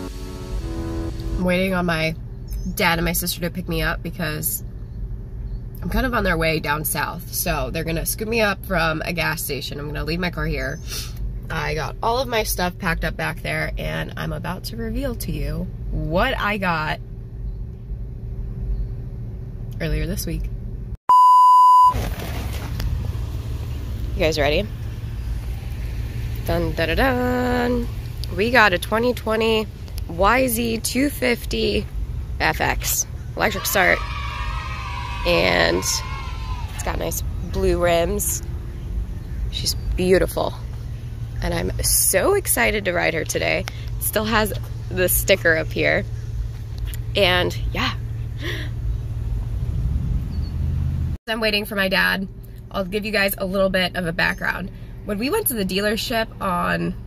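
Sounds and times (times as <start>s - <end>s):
traffic rumble: 0.0s - 21.0s, 21.9s - 57.0s.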